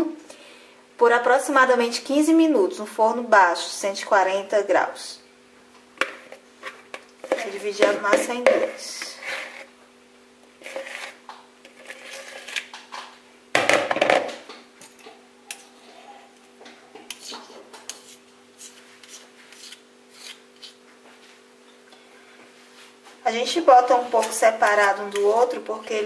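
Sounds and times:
steady low hum: 0:00.0 - 0:26.0
metal spoon scraping a bowl: 0:06.6 - 0:09.7, 0:10.6 - 0:12.7, 0:17.1 - 0:20.8.

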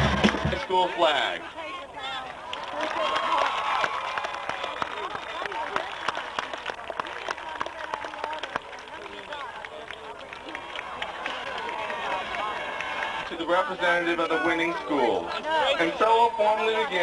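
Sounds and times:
people clapping: 0:00.0 - 0:00.8, 0:02.0 - 0:14.5
crowd voices talking and calling: 0:00.0 - 0:17.0.

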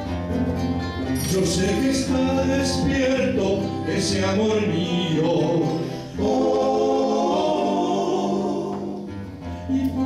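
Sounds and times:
acoustic guitars: 0:00.0 - 0:10.0
male vocal group singing harmony: 0:01.3 - 0:10.0.

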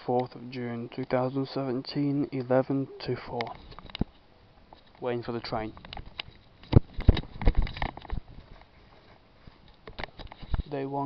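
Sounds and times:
irregular close knocks and thumps: 0:05.6 - 0:08.7.

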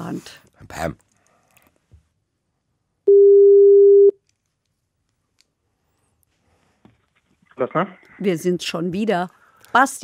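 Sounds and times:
telephone ringback tone: 0:03.1 - 0:04.1.

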